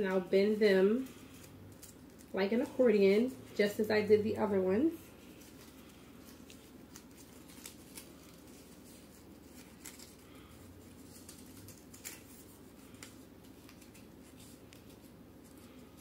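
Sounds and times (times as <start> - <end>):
paper crinkling: 0.0 - 3.9, 4.9 - 16.0
low room hum: 0.0 - 16.0.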